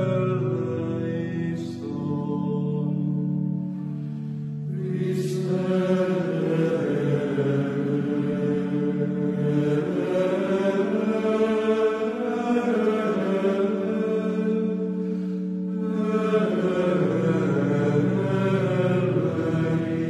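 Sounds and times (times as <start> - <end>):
voices chanting low drone: 0.0 - 20.0.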